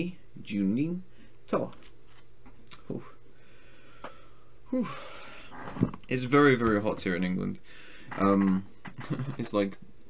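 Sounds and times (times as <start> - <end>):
man sighing: 4.1 - 5.5.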